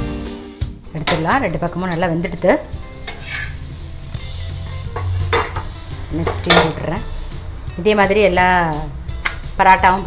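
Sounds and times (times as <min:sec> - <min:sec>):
spatula scraping metal: 0:01.8 - 0:03.9, 0:04.7 - 0:05.7.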